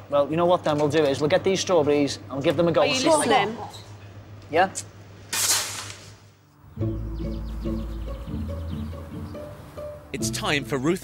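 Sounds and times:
background music with low notes: 0:06.7 - 0:11.0.

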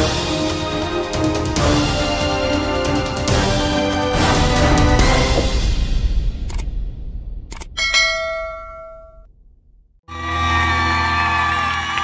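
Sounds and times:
bright bell ding: 0:07.8 - 0:09.3.

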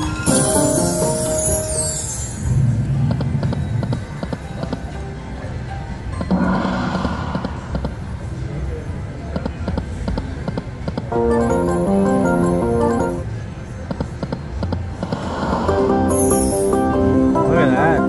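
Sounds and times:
slot machine bonus music: 0:00.0 - 0:02.3, 0:11.1 - 0:13.3, 0:15.9 - 0:18.0.

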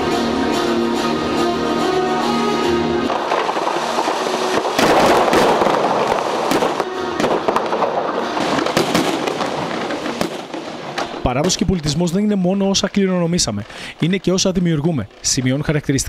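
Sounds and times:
fireworks bangs and crackles: 0:03.0 - 0:16.0.

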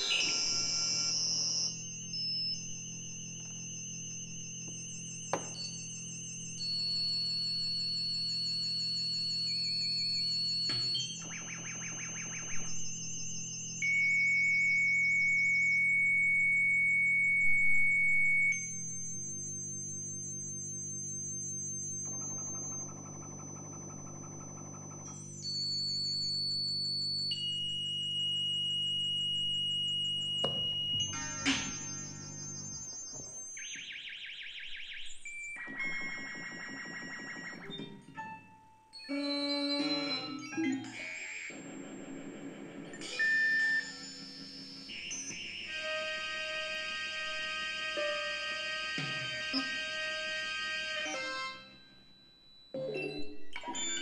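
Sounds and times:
high electronic tones: 0:00.0 - 0:54.0.

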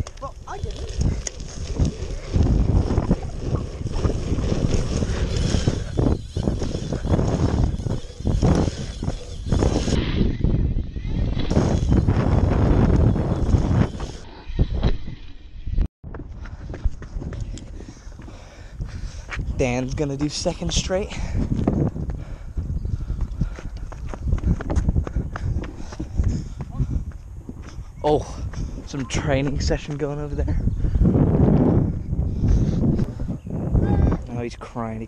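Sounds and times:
bike tyres rolling on asphalt: 0:00.0 - 0:14.2, 0:16.1 - 0:33.4
wind buffeting microphone: 0:00.0 - 0:35.0.

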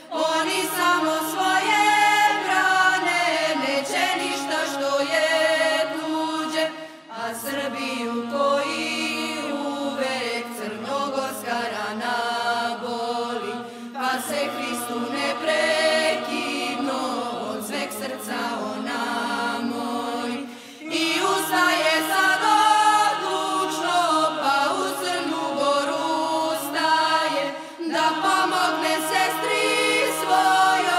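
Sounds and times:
several voices singing: 0:00.0 - 0:30.9.

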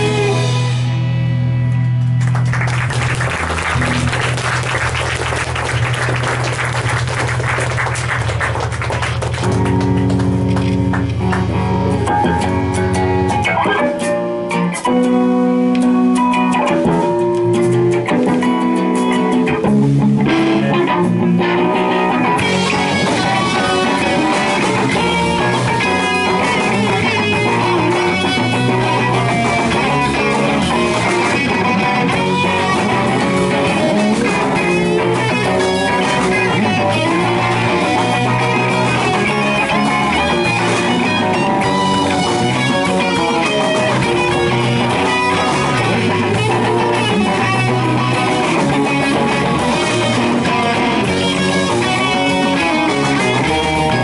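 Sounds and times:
electric bass: 0:00.0 - 0:54.0
electric guitars: 0:00.0 - 0:54.0.

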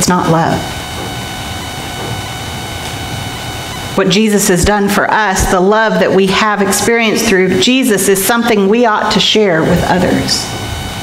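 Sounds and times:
faint hum: 0:00.0 - 0:11.0
high whining tones: 0:00.0 - 0:11.0.

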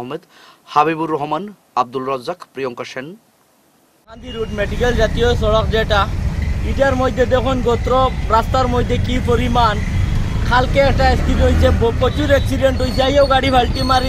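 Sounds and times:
man speaking: 0:00.0 - 0:03.2, 0:04.1 - 0:14.0
road traffic rumble: 0:04.2 - 0:14.0.

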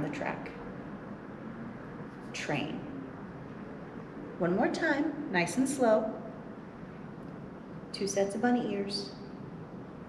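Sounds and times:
woman speaking: 0:00.0 - 0:00.6, 0:02.4 - 0:03.0, 0:04.4 - 0:06.3, 0:07.9 - 0:09.2
faint background hiss: 0:00.0 - 0:10.0.

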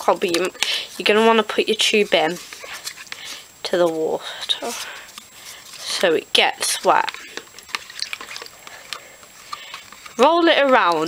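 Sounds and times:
water splashing in plastic tub: 0:05.8 - 0:11.0.

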